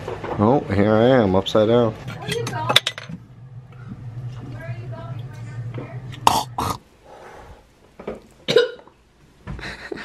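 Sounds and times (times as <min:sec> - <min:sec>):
person coughing: 0:08.5 - 0:08.9.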